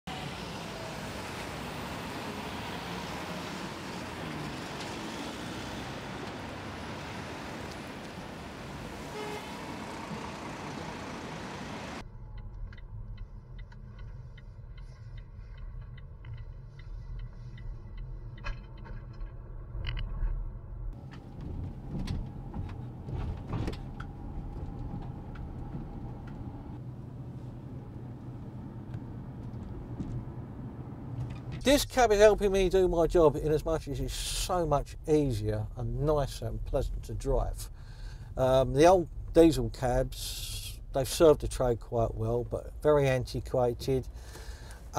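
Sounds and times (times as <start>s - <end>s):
passing traffic: 0.1s - 44.9s
road noise rumble inside car: 0.1s - 44.9s.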